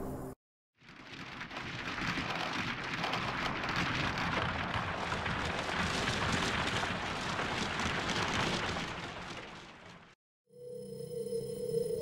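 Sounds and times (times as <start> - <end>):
synthesizer crackling noise texture: 0.8 - 10.1.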